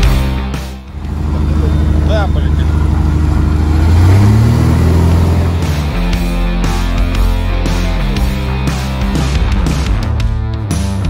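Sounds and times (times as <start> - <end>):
rock music: 0.0 - 11.0
aircraft engine and propeller drone: 0.9 - 8.3.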